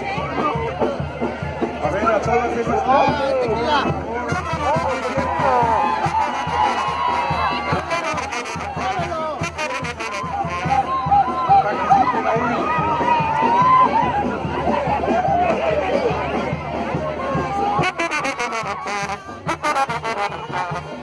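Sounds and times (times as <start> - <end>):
crowd chatter: 0.0 - 21.0
brass band music: 3.8 - 11.8, 17.6 - 21.0.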